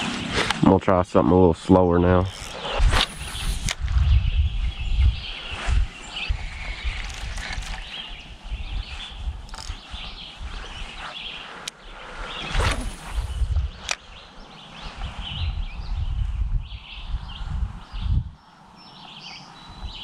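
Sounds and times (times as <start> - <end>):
small birds chirping: 0.0 - 20.0
wind on microphone: 1.7 - 18.5, 19.4 - 20.0
brief swish: 2.6 - 3.8, 12.4 - 13.4
sharp clicks: 9.5 - 9.8.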